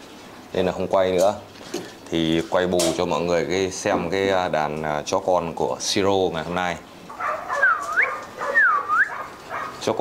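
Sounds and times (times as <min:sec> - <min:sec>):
puppy whining: 0:07.1 - 0:09.8.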